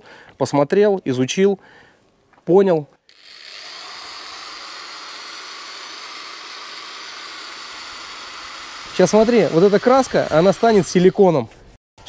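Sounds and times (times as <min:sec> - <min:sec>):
electric drill mixer whirring: 0:03.1 - 0:11.2.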